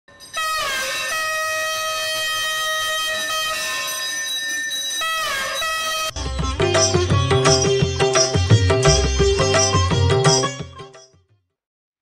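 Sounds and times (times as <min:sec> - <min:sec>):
conch shell blown: 0:00.2 - 0:04.4, 0:05.0 - 0:10.6.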